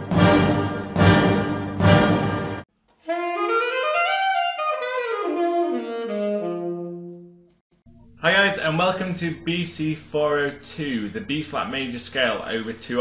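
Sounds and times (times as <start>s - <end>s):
ensemble chord hits: 0.0s - 2.6s
solo saxophone phrase: 3.0s - 7.5s.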